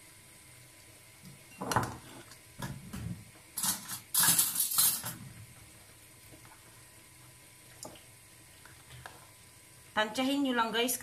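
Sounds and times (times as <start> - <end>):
metal cutlery rattling: 3.6 - 5.2.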